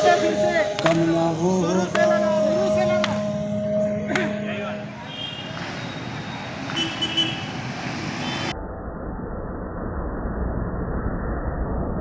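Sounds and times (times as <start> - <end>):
vehicles passing: 0.0 - 8.6
steady low rumble: 8.5 - 12.0.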